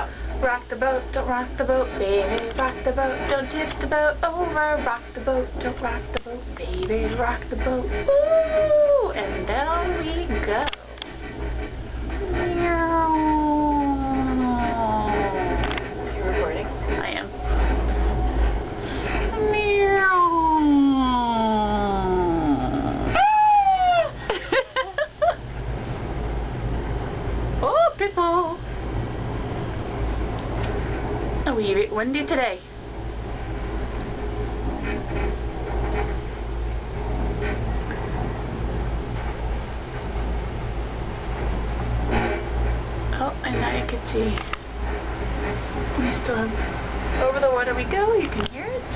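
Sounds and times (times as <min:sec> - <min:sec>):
gondola cabin rumble: 0:00.0 - 0:48.9
person saying a long ooh: 0:08.1 - 0:09.2, 0:12.2 - 0:15.6, 0:19.4 - 0:24.2.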